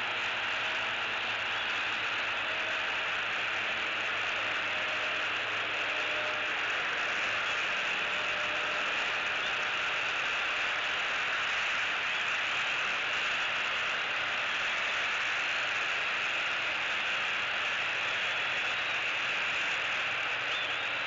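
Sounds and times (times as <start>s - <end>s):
outdoor hiss: 0.0s - 21.0s.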